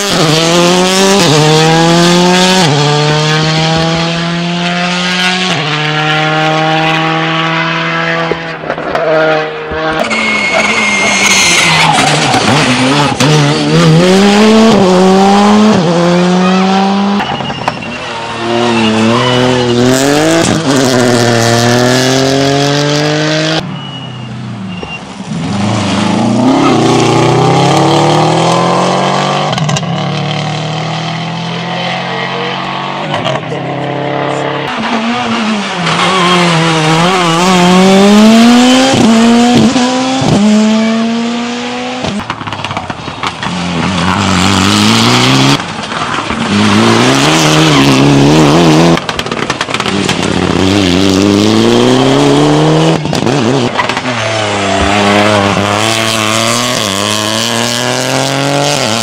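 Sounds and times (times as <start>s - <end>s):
rally car engines revving: 0.0s - 59.0s.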